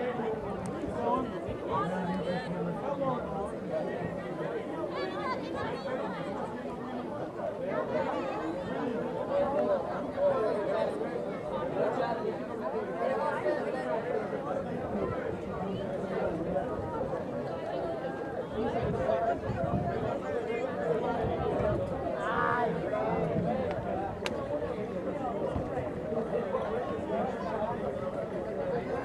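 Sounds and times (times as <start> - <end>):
people chattering: 0.0 - 29.0.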